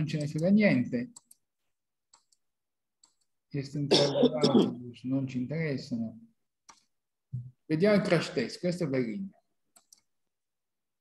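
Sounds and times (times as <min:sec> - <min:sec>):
faint computer mouse clicks: 0:09.7 - 0:10.1.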